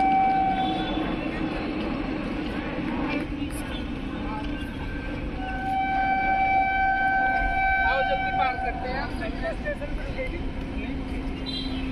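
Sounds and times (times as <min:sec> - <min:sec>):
train horn: 0:00.0 - 0:01.2, 0:05.4 - 0:09.0.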